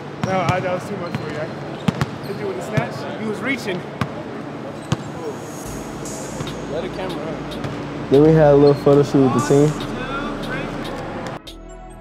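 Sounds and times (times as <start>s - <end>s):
distant voices: 0.0s - 11.4s
low hum: 5.2s - 11.4s.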